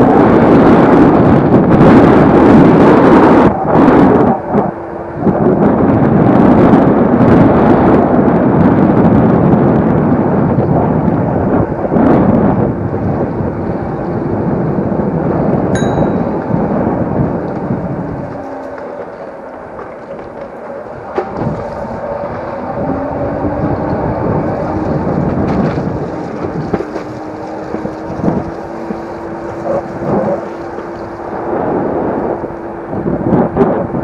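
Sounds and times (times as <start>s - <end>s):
scooter road rumble: 0.0s - 34.0s
wind rushing over microphone: 0.0s - 34.0s
short bell ding: 15.8s - 16.5s.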